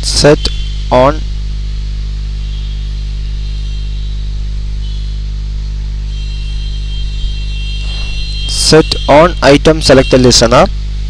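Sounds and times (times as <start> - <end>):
electrical mains hum: 0.0 - 11.0.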